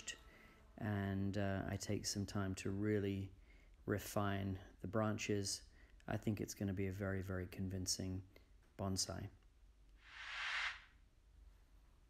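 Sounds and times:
soft airy whoosh: 10.0 - 11.0.

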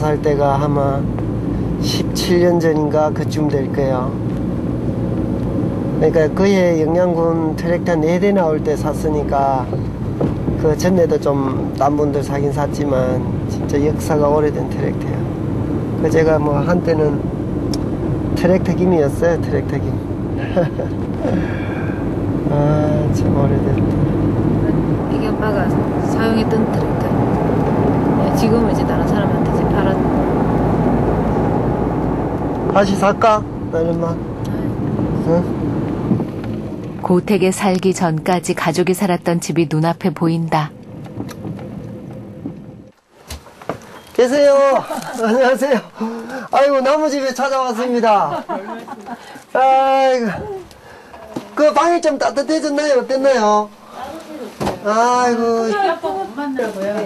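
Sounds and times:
car engine rumble inside cabin: 0.0 - 37.6, 39.8 - 43.6
tyres on road: 0.0 - 57.0
woman speaking: 24.6 - 27.2, 28.2 - 30.1, 37.0 - 40.8, 53.9 - 54.8, 55.7 - 57.0.

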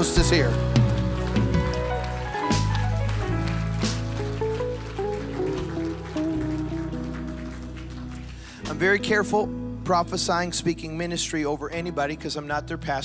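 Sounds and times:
held bass line: 0.0 - 11.9
soft keyboard chords: 0.0 - 13.0.

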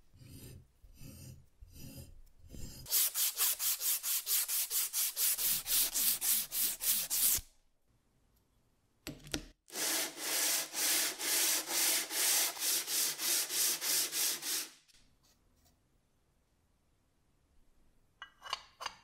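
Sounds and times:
metal rasping on sandpaper: 0.1 - 7.4, 9.7 - 14.8.

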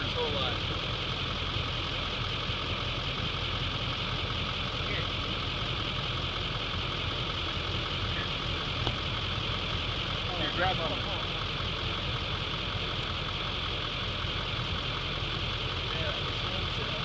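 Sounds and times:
truck engine idling: 0.0 - 17.0.

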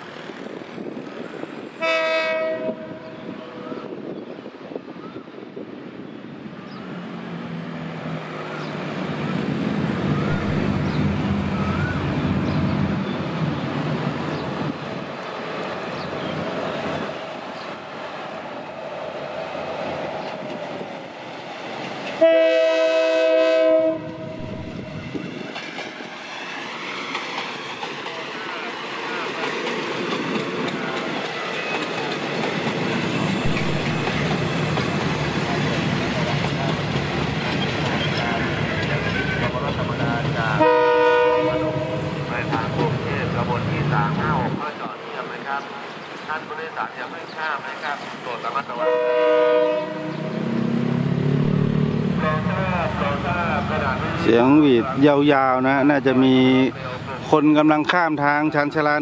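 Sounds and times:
train engine and wheels: 0.0 - 59.0
train horn blast: 1.8 - 3.7, 22.2 - 25.0, 40.5 - 42.3, 48.7 - 50.6.

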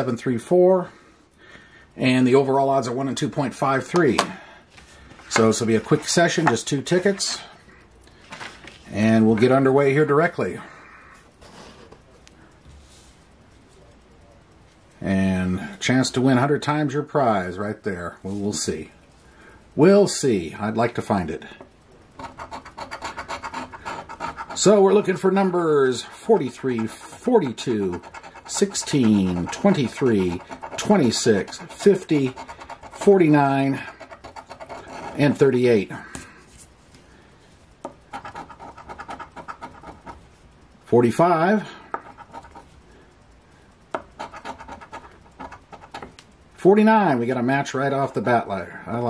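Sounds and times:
coin scraping scratch card: 22.2 - 35.6, 38.0 - 40.2, 41.9 - 42.7, 44.0 - 46.1.

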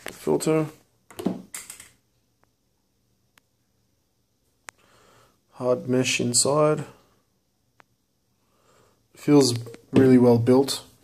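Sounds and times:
breathy hiss: 4.7 - 5.6, 8.3 - 9.2.

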